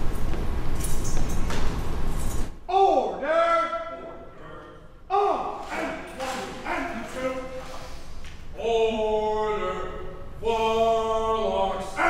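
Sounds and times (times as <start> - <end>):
person shouting commands: 2.7 - 4.3, 5.1 - 8.0, 8.6 - 12.0.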